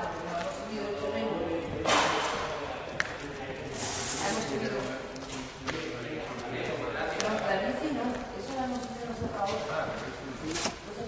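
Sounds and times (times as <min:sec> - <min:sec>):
people talking in background: 0:00.0 - 0:11.0
brief hissing noise: 0:03.8 - 0:04.5.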